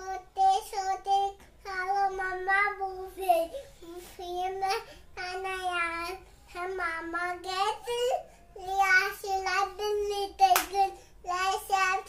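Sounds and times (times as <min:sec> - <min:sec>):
young child singing: 0:00.0 - 0:12.0.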